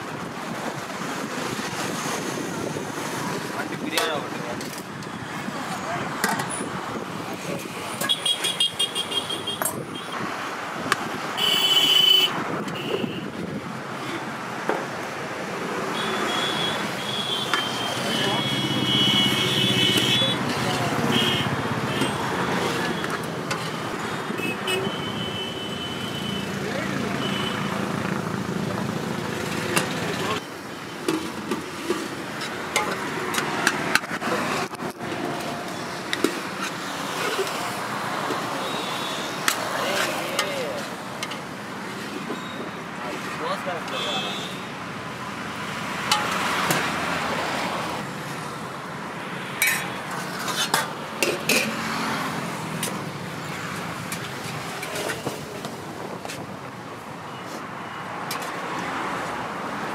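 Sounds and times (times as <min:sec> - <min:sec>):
road traffic passing: 0:00.0 - 0:59.9
vehicle horns honking: 0:08.0 - 0:10.2, 0:11.4 - 0:13.3, 0:16.0 - 0:20.4, 0:21.0 - 0:22.3, 0:24.3 - 0:26.5, 0:43.9 - 0:44.6.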